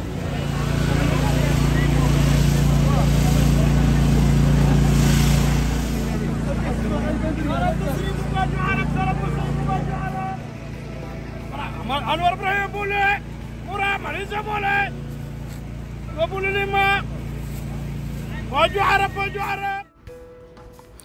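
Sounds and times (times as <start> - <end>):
vehicle engine drone: 0.0 - 19.9.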